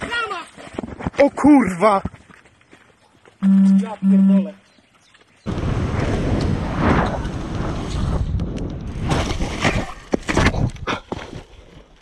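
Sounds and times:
wind rumbling on microphone: 5.4s - 11.0s.

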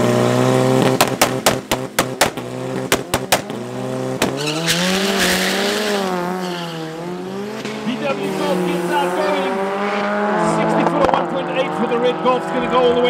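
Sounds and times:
race cars accelerating: 0.0s - 13.0s
engine sharp bangs: 0.8s - 11.7s.

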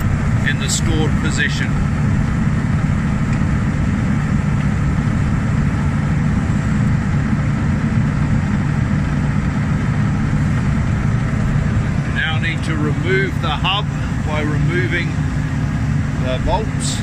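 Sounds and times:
diesel engine idling: 0.0s - 17.0s.

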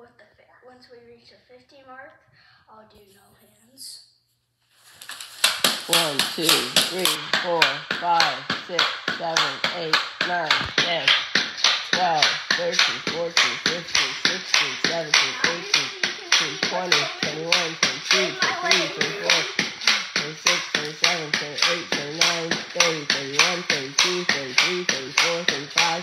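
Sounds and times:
pogo stick thuds on floor: 4.9s - 26.0s.

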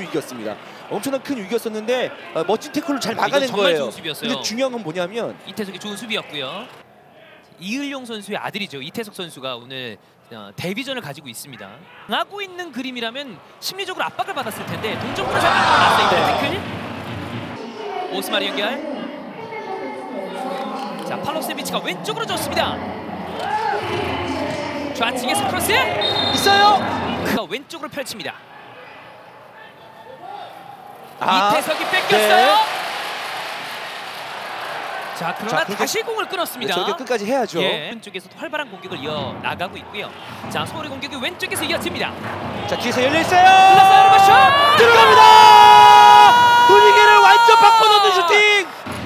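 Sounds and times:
stadium background noise: 0.0s - 49.0s
commentator's excited shout: 15.2s - 16.6s, 31.2s - 32.7s, 43.0s - 48.7s.

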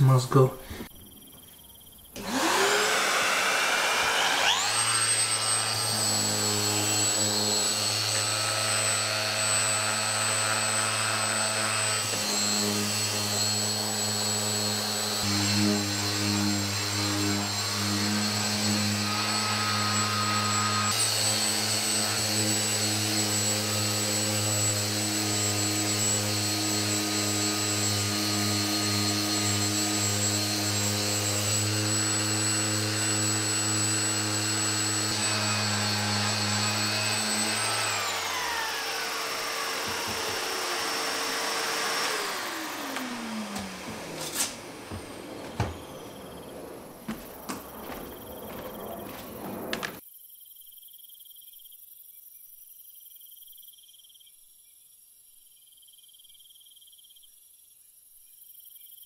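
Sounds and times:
orbital sander on wood: 2.2s - 50.0s
shop vacuum whine: 2.2s - 50.0s.

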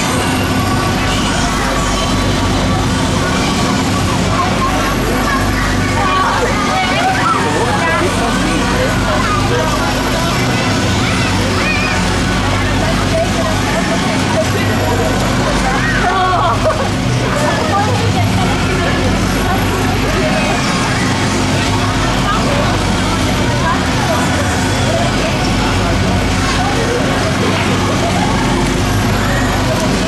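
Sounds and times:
fairground ride mechanical hum: 0.0s - 30.0s
indistinct crowd voices: 0.0s - 30.0s.

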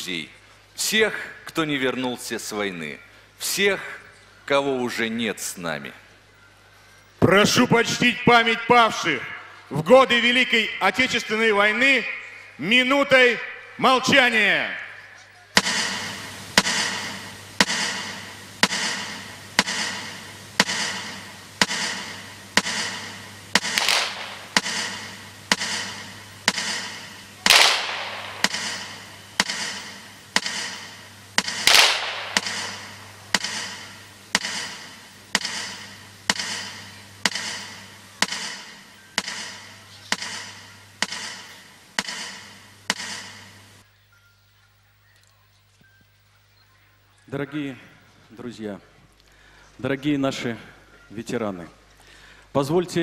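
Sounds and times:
rifle volleys: 15.6s - 39.4s.

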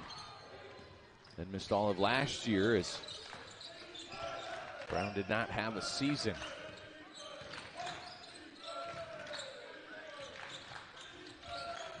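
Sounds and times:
faint voices in a gym: 0.0s - 12.0s.

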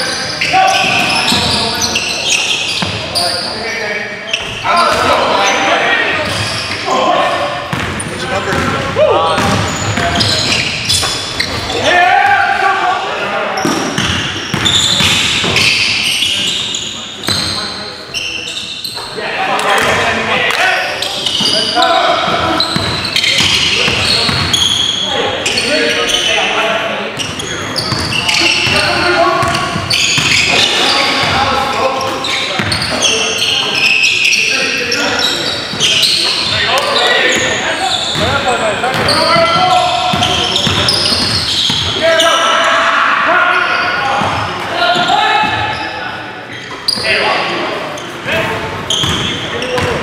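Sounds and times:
players shouting: 8.3s - 17.6s.

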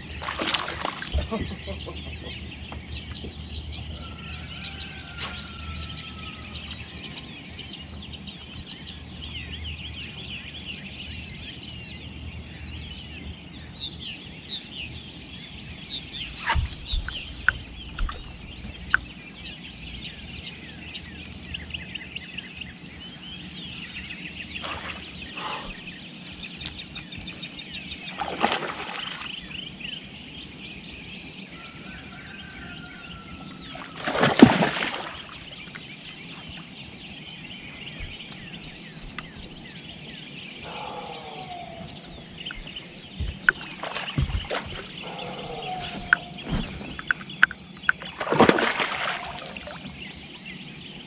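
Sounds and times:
birds chirping in chorus: 0.0s - 51.0s.

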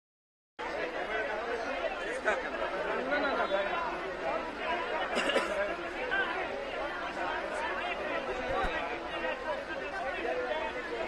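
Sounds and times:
people chattering: 0.6s - 11.0s.

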